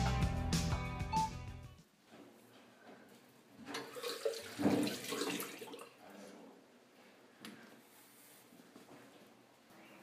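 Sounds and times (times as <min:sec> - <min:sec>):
tap water splashing in sink: 0:03.7 - 0:05.9.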